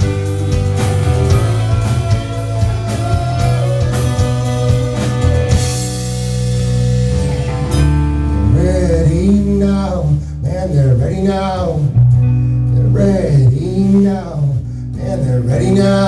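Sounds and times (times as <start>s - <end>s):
deep bass note: 0.0s - 16.0s
live rock band: 0.0s - 16.0s.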